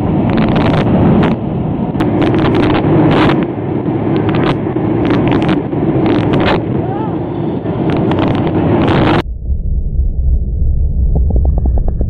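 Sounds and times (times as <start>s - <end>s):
engine and airflow rush: 0.0s - 12.0s
short crackles: 0.2s - 1.4s, 2.0s - 3.5s, 4.2s - 6.6s, 7.8s - 9.2s.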